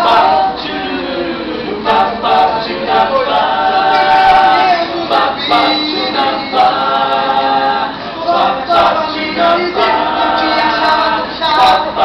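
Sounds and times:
a cappella vocal harmony: 0.0s - 12.0s.

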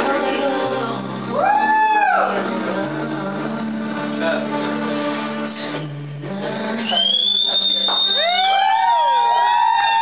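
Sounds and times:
people whistling: 5.4s - 5.8s, 6.8s - 10.0s.

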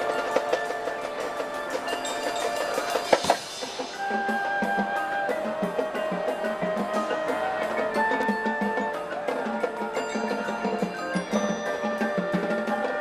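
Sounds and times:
loud percussion hits: 0.0s - 12.2s
marching band playing: 0.0s - 13.0s
percussion taps: 2.8s - 3.7s.

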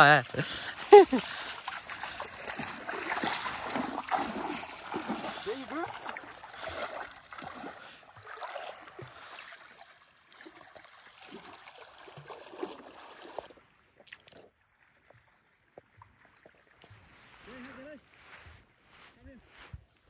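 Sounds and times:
water splashing: 0.0s - 18.4s.

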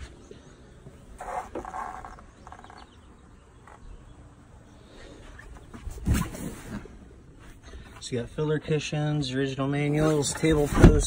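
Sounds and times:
seat lid creaking: 1.1s - 3.0s, 10.0s - 11.0s.

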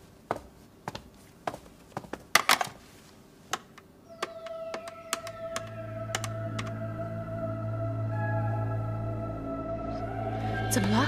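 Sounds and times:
background music with held tones: 4.0s - 11.0s
telephone keypad buttons clicking: 4.2s - 6.7s.

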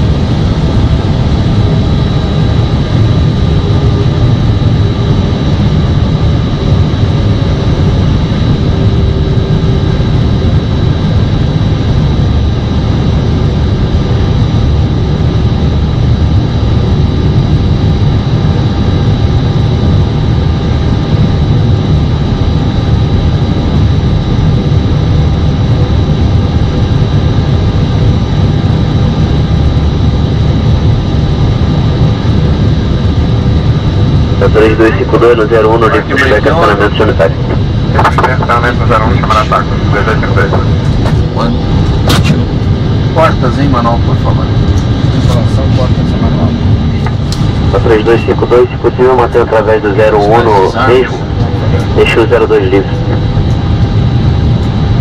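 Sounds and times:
faint steady whines: 0.0s - 55.0s
jet engines idling rumble: 0.0s - 55.0s.

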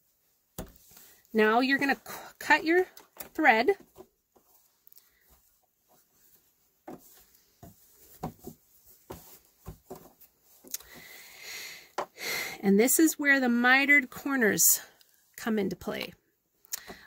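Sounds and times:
fabric sliding rustle: 0.0s - 11.2s
fabric rustling: 0.0s - 11.3s.

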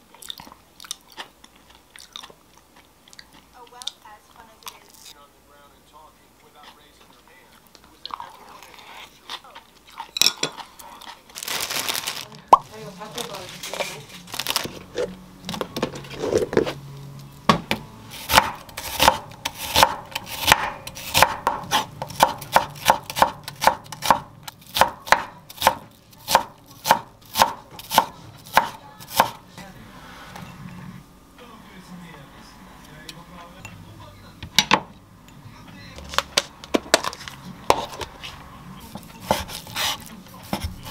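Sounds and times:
knife chopping on wooden board: 17.5s - 29.4s, 38.9s - 40.9s.

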